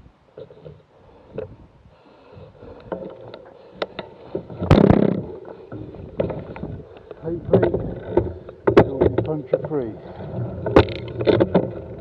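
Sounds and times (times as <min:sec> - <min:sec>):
bicycle rolling on rough tarmac: 0:02.2 - 0:12.0.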